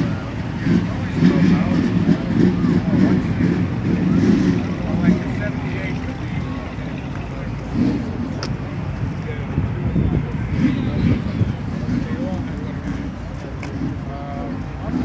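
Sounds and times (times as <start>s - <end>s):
people talking in background: 0.0s - 15.0s
wind rumbling on microphone: 7.9s - 13.3s.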